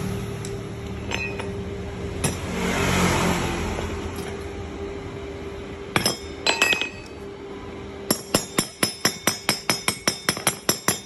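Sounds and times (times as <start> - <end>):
chipping hammer striking steel plate: 8.1 - 11.0.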